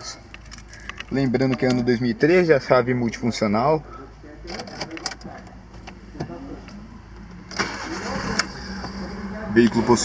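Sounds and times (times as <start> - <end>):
car engine starting and idling: 4.4 - 10.0.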